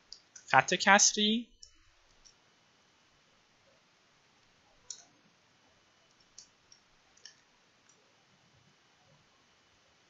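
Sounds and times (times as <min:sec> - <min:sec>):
faint sharp computer clicks: 0:04.9 - 0:05.2.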